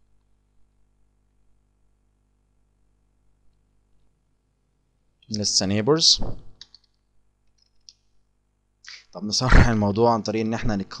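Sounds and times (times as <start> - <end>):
man speaking: 5.3 - 6.4, 8.9 - 11.0.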